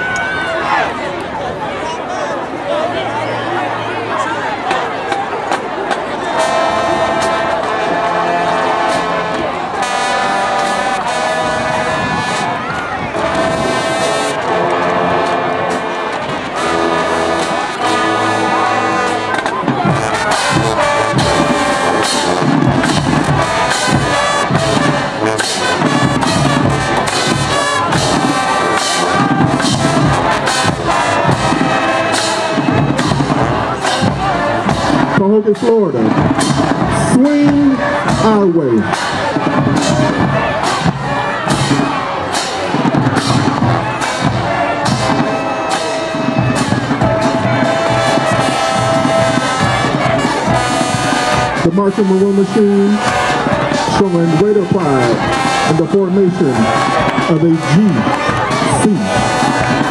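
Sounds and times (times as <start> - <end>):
marching drums beat: 5.9 - 59.9
brass holding long chords: 6.1 - 59.9.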